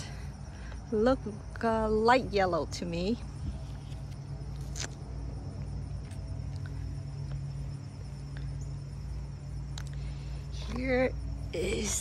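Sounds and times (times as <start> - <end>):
faint high insect drone: 0.0 - 12.0
low hum and rumble: 0.0 - 12.0.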